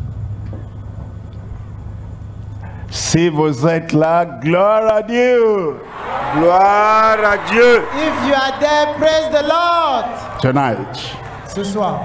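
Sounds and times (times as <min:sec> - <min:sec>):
steady low hum: 0:00.0 - 0:03.6.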